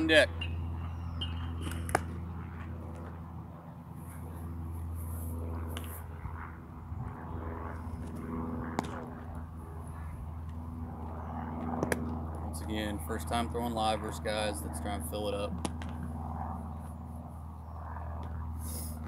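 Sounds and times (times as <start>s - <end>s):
low mechanical hum: 0.0s - 19.0s
baseball popping into leather glove: 1.6s - 2.2s, 8.7s - 9.1s, 11.6s - 12.2s.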